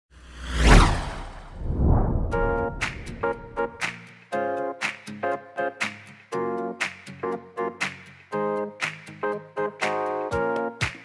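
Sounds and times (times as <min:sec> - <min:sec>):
whoosh: 0:00.2 - 0:03.8
deep bass rumble: 0:00.8 - 0:03.8.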